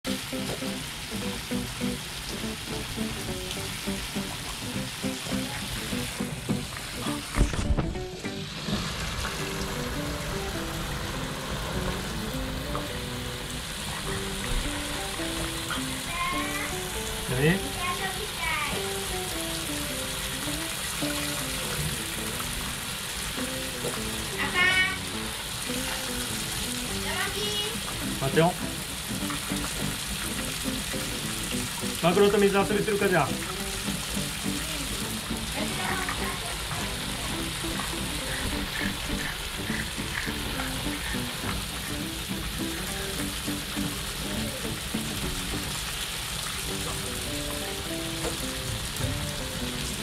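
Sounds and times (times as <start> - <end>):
garden hose water spraying: 0.0 - 50.0
light background music: 0.1 - 46.0, 46.6 - 50.0.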